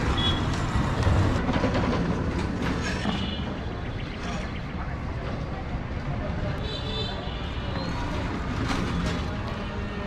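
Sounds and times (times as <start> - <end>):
motor vehicle rumbling: 0.0 - 10.0.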